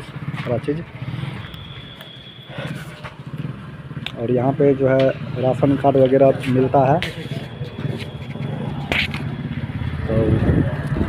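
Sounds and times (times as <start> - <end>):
thin high tone: 1.4 - 3.2.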